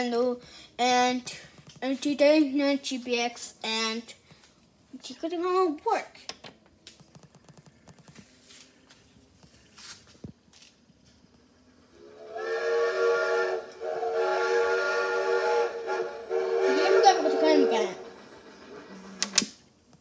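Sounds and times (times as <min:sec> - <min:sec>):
steam train whistle: 0:11.9 - 0:18.9.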